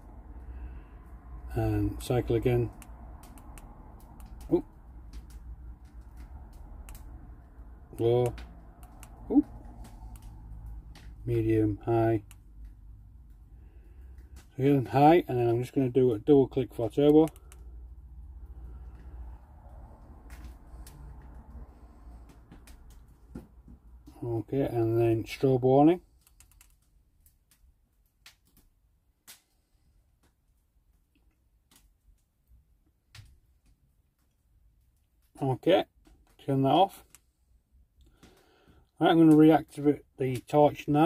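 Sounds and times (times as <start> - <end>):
faint sharp clicks: 2.7 - 11.2, 16.9 - 17.7, 26.2 - 28.7
torch switch clicking: 2.8 - 4.4, 8.2 - 9.2.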